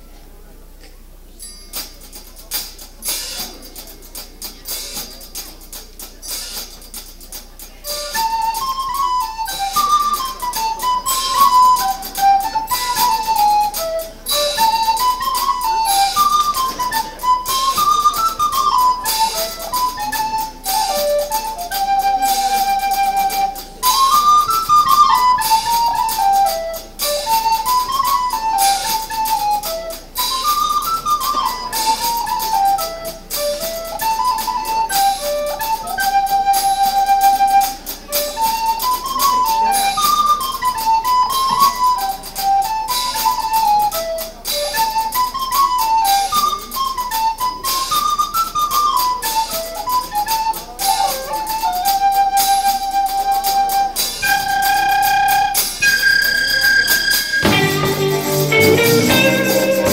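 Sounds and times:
recorder melody: 6.2 - 59.9.

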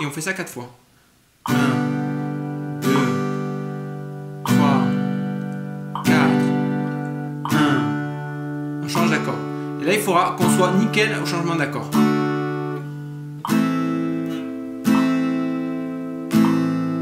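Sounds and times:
acoustic guitar strums: 0.8 - 17.0.

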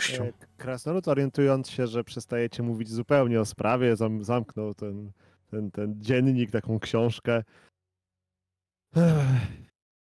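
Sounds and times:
man sighing: 8.9 - 9.7.

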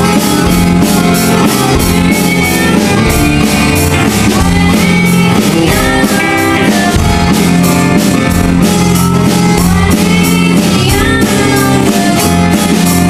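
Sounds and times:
drum kit steady beat: 0.0 - 13.0
girl singing: 0.0 - 13.0
guitar strumming: 0.0 - 13.0
keyboard: 0.0 - 13.0.

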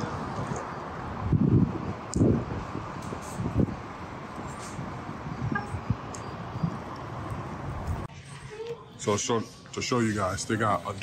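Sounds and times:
wind buffeting microphone: 0.0 - 8.1
urban background noise: 0.0 - 11.0.

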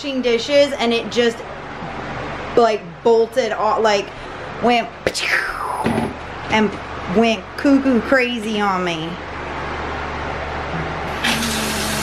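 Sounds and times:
steady low hum: 0.0 - 12.0
faucet turned on: 11.1 - 12.0
water running from tap into sink: 11.1 - 12.0.

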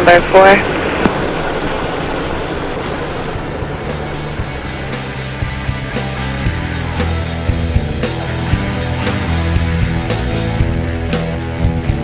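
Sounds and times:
background music with beat: 2.8 - 12.0
low bass line: 2.8 - 12.0.

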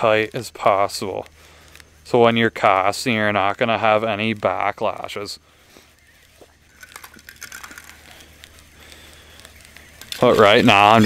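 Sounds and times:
steady low hum: 0.0 - 11.0
fishing reel clicks: 6.8 - 8.2.

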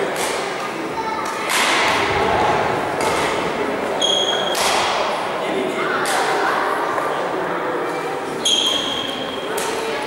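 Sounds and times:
racket hitting shuttlecock: 1.4 - 2.0, 4.0 - 5.1.

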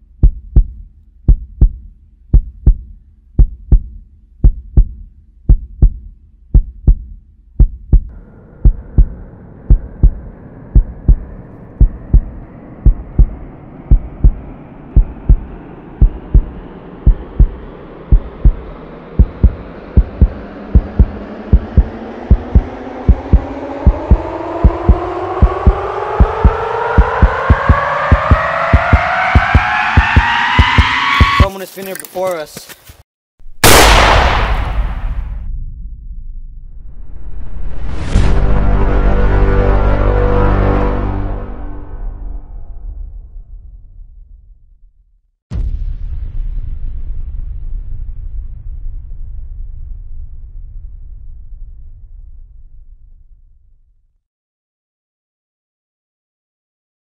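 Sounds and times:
low heartbeat-like pulse: 0.0 - 31.5
rising riser tone: 8.1 - 31.6, 33.5 - 44.2.

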